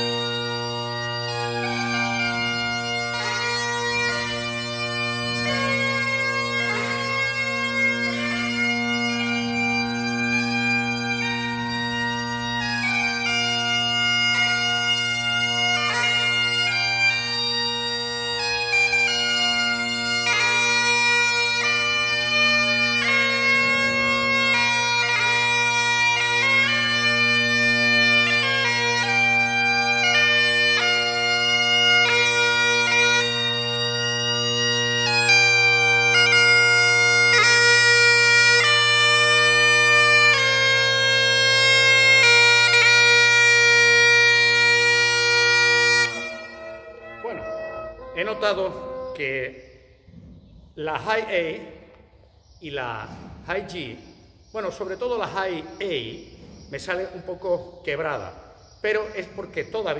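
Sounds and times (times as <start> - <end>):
bagpipe chanter playing a tune: 0.0 - 50.0
steady bagpipe drones: 0.0 - 52.5.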